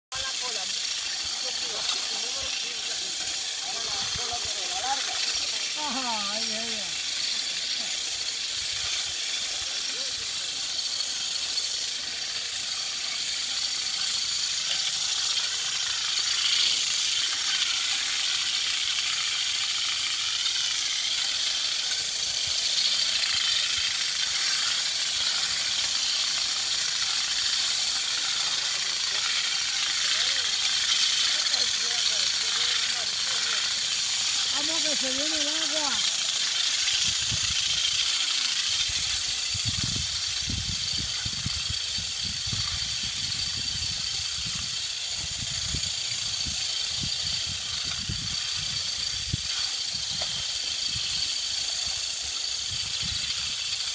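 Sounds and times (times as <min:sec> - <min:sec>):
vibrating combs rattling branches: 0:00.1 - 0:53.9.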